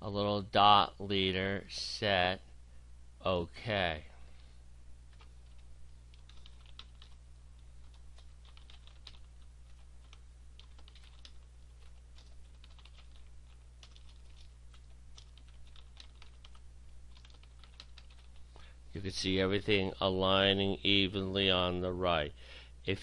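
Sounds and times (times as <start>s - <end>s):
low steady hum: 0.0s - 23.0s
computer keyboard typing: 5.1s - 18.6s.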